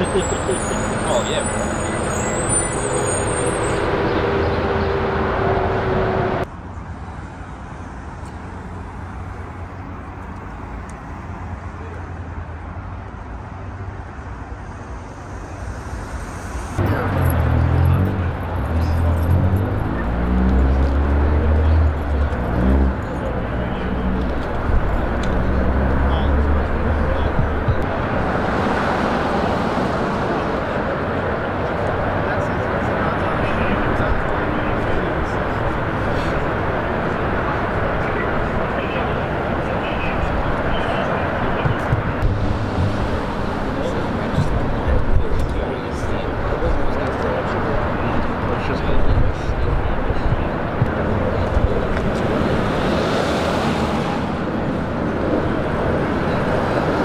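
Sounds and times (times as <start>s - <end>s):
traffic noise: 0.0s - 57.0s
vehicle engine humming: 0.0s - 57.0s
indistinct voices: 15.0s - 57.0s.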